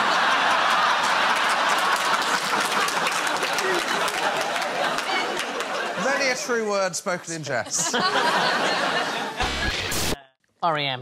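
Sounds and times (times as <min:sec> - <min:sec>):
audience clapping: 0:00.0 - 0:06.1
audience laughing: 0:00.0 - 0:10.2.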